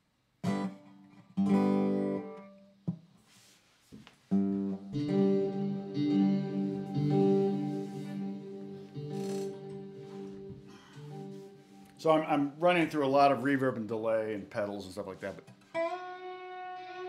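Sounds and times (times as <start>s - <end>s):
resonator guitar chords with reverb: 4.4s - 12.0s, 15.4s - 17.0s.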